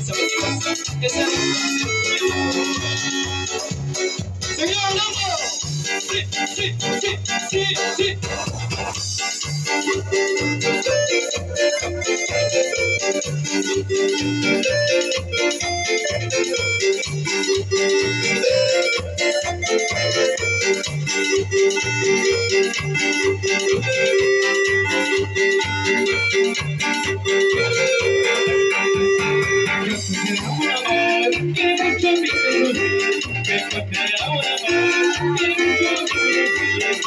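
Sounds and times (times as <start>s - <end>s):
organ-like keyboard melody: 0.0s - 37.0s
steady bass beat: 0.0s - 37.0s.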